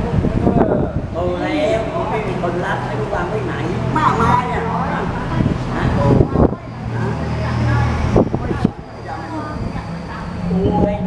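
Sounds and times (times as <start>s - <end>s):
man's voice: 0.0s - 6.2s
low motor hum: 0.0s - 11.0s.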